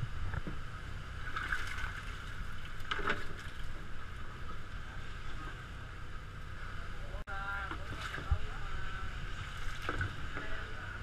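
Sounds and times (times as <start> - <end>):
boat engine droning: 0.0 - 11.0.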